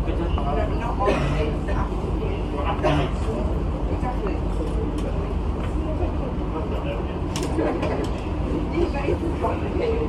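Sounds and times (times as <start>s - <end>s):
train car low hum: 0.0s - 10.0s.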